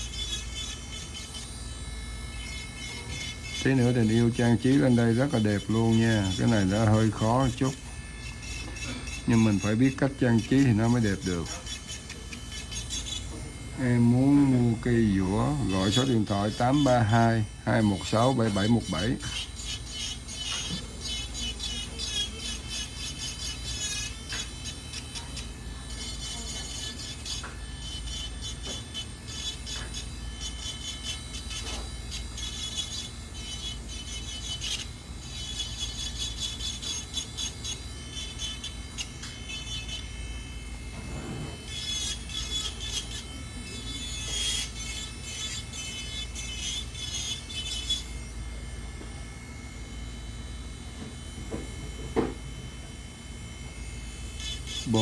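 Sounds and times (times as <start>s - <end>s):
drill bit grinding on nail: 0.0s - 55.0s
electric nail drill running: 0.0s - 55.0s.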